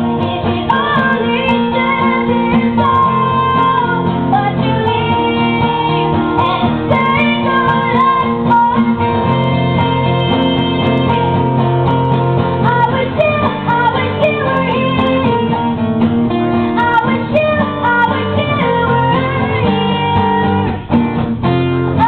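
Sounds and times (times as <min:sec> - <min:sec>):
woman singing: 0:00.0 - 0:11.5, 0:12.6 - 0:21.0
acoustic guitars strummed and picked: 0:00.0 - 0:22.0.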